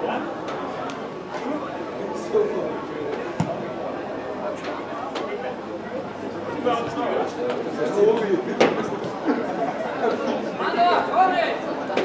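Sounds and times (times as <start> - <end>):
indistinct chatter in echoing hall: 0.0 - 12.0.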